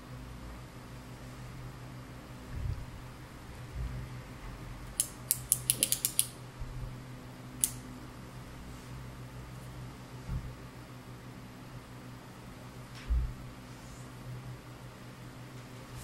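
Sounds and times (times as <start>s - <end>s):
lipstick pencil clicking: 5.0s - 6.3s.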